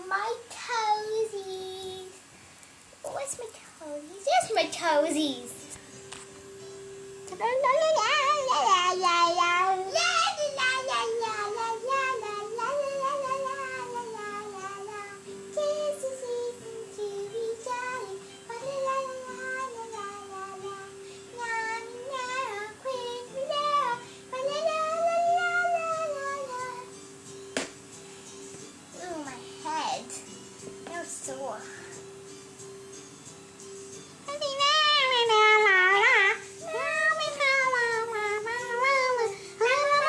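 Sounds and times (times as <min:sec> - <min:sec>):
child singing wordless melody: 0:00.0 - 0:02.2, 0:03.1 - 0:05.7, 0:07.3 - 0:27.0, 0:28.9 - 0:32.0, 0:34.2 - 0:40.0.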